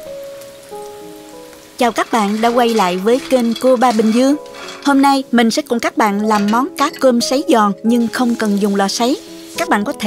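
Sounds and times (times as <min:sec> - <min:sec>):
hot oil crackling and sizzling: 0:00.0 - 0:10.0
soft background music: 0:00.0 - 0:10.0
woman speaking: 0:01.8 - 0:10.0.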